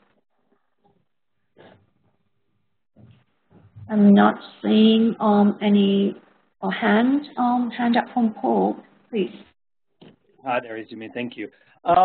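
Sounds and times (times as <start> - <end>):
person speaking: 3.0 - 6.1, 10.4 - 12.0.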